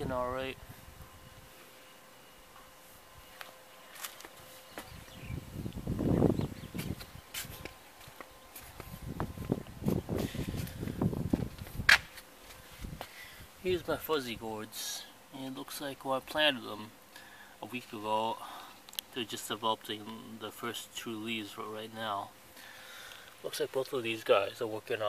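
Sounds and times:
footsteps low thuds: 0:03.3 - 0:13.2.

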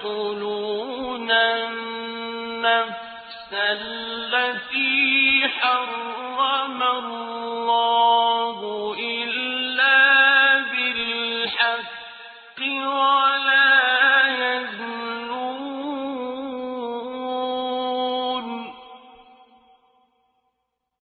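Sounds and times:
voice chanting melodically: 0:00.0 - 0:19.7.

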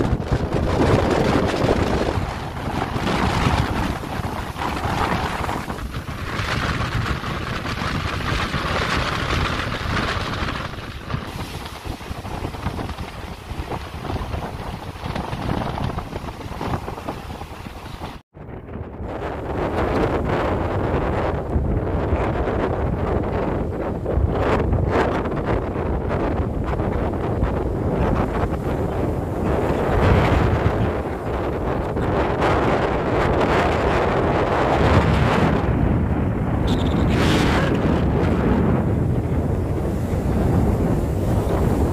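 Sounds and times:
surf breaking against seawall: 0:00.0 - 0:18.2, 0:27.3 - 0:41.9
wind buffeting microphone: 0:00.0 - 0:41.9.

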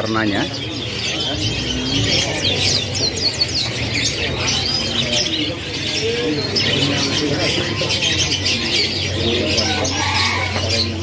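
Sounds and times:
canaries chirping and singing: 0:00.0 - 0:11.0.

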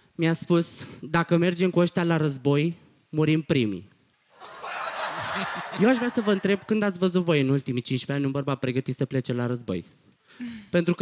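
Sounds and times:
audience laughing: 0:04.4 - 0:07.0
person talking: 0:05.4 - 0:07.8.

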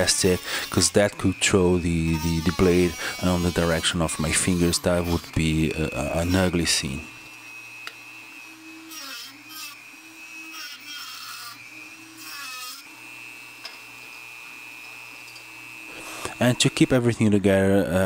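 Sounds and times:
rotary tool cutting plastic: 0:00.0 - 0:07.0, 0:07.8 - 0:13.8.

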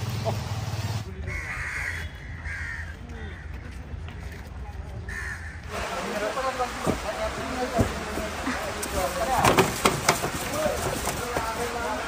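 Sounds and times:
outdoor background noise: 0:00.0 - 0:12.0
crow cawing: 0:01.2 - 0:04.4, 0:05.1 - 0:05.7.

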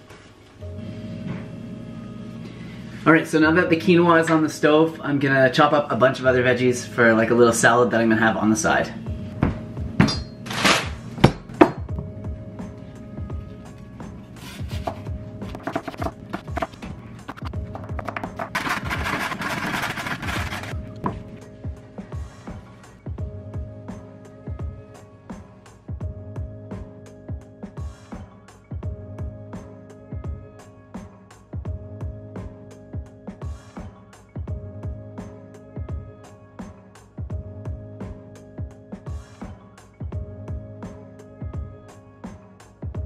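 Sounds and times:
background music: 0:00.0 - 0:43.0
sustained low music chord: 0:00.6 - 0:05.2, 0:11.9 - 0:15.4.

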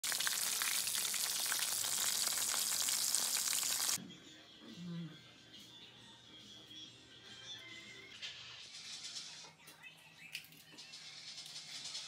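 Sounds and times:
chicken deep-frying in oil: 0:00.0 - 0:04.0.

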